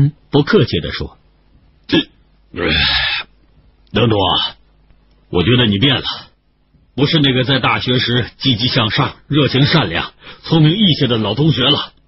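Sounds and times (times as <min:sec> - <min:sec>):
synthesized male voice narrating: 0:00.0 - 0:03.0, 0:03.8 - 0:04.7, 0:05.3 - 0:12.0.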